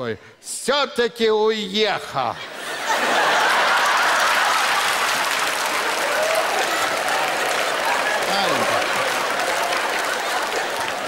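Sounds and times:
audience applauding: 0:02.9 - 0:11.0.

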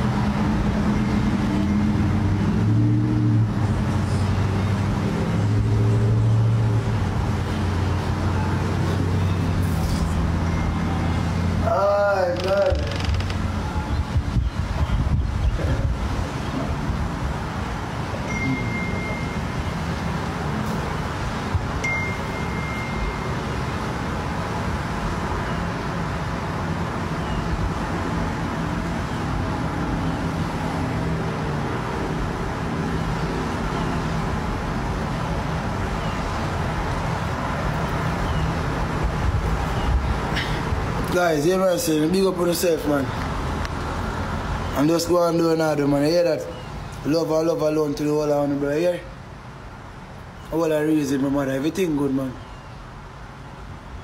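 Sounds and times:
short high-pitched beeps: 0:18.3 - 0:19.5, 0:21.8 - 0:23.4.

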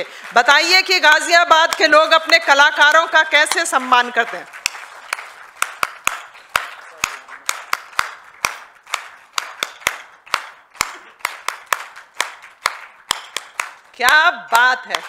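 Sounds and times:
sharp hand claps: 0:00.0 - 0:15.0
softer background clapping: 0:00.0 - 0:15.0.

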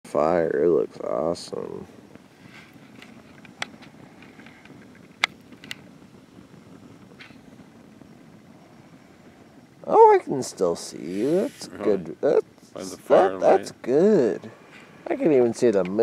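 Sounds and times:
campfire hissing and crackling: 0:00.0 - 0:16.0.

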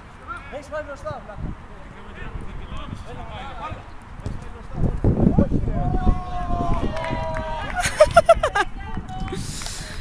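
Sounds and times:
wind rumbling on microphone: 0:01.0 - 0:10.0
men shouting and calling out: 0:05.3 - 0:09.0.

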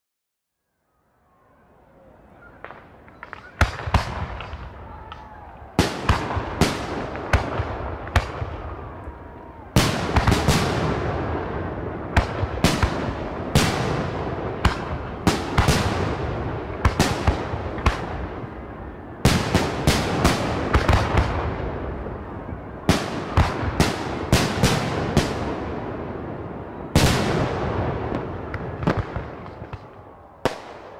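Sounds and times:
fireworks bangs: 0:02.4 - 0:30.9
fireworks crackle: 0:26.9 - 0:30.9.

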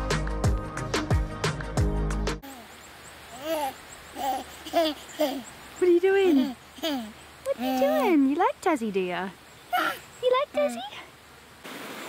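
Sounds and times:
background music: 0:00.0 - 0:02.4
baby cooing and babbling: 0:03.3 - 0:05.5, 0:06.4 - 0:08.1, 0:09.7 - 0:10.8.

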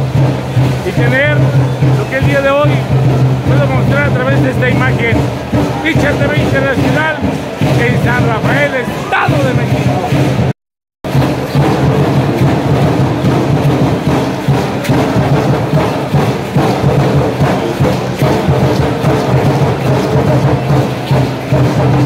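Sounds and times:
percussion sharp beats: 0:00.0 - 0:22.0.

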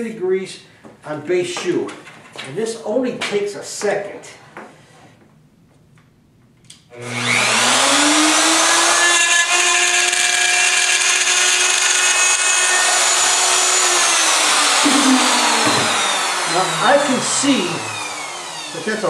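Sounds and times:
power saw cutting wood: 0:06.9 - 0:19.0.

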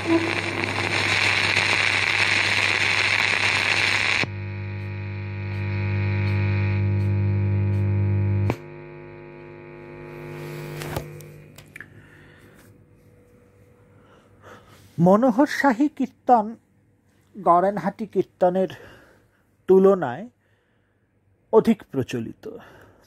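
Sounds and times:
electrical hiss: 0:00.0 - 0:11.6
electrical hum: 0:00.0 - 0:19.8
clicks: 0:10.6 - 0:12.0.

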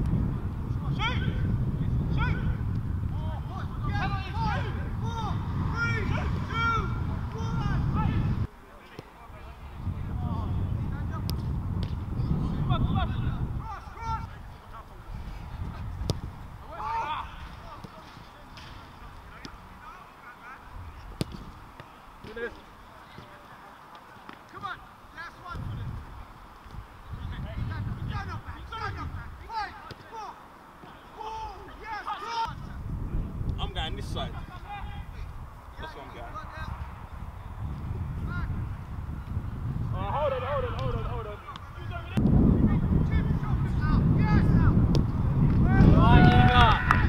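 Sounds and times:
low outdoor rumble: 0:00.0 - 0:08.5
wind rumble on microphone: 0:00.0 - 0:08.5, 0:09.3 - 0:17.8, 0:25.4 - 0:29.6, 0:32.5 - 0:47.0
players shouting calls: 0:03.2 - 0:09.5, 0:12.8 - 0:15.3, 0:16.5 - 0:26.1, 0:27.2 - 0:32.8, 0:45.6 - 0:47.0
football being kicked: 0:15.6 - 0:16.4, 0:21.1 - 0:22.4
football kicked with a thud: 0:15.8 - 0:16.4, 0:21.2 - 0:21.5.

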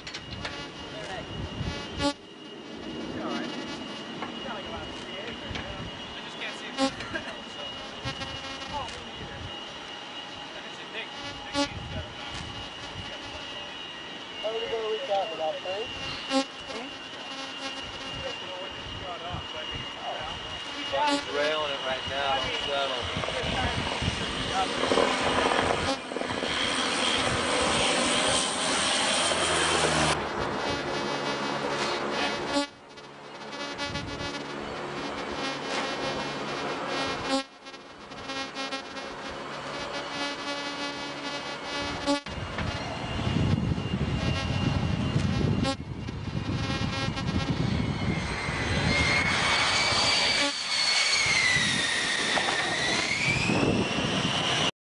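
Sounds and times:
high whine sliding in pitch: 0:00.0 - 0:54.7
turboprop aircraft drone: 0:00.0 - 0:54.7.

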